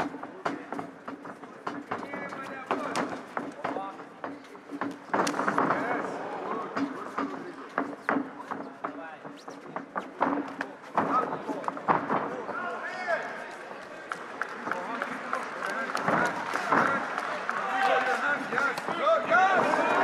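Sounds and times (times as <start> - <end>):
crowd shouting: 16.1 - 20.0.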